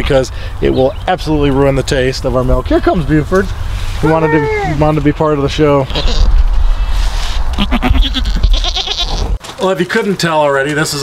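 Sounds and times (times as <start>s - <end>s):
low microphone rumble: 0.0s - 8.6s
goat bleating: 5.8s - 6.3s, 7.6s - 9.4s.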